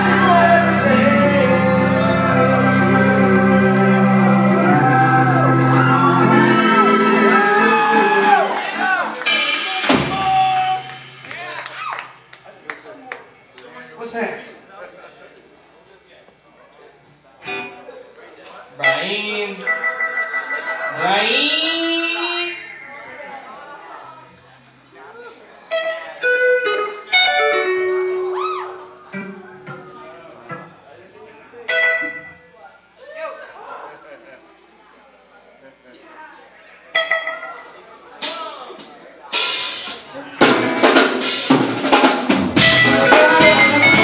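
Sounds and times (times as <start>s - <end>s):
electric guitar single notes: 0.0s - 8.6s, 18.8s - 23.2s, 25.7s - 30.7s, 31.6s - 32.6s, 36.9s - 37.9s, 42.6s - 44.0s
live ska band playing: 0.0s - 12.6s, 18.8s - 24.7s, 25.6s - 30.8s, 31.6s - 32.6s, 36.8s - 44.0s.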